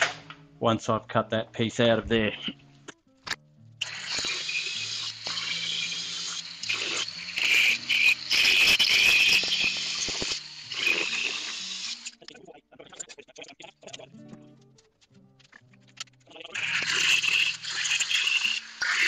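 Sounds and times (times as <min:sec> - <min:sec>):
angle grinder cutting steel: 0:03.8 - 0:12.2, 0:16.6 - 0:19.0.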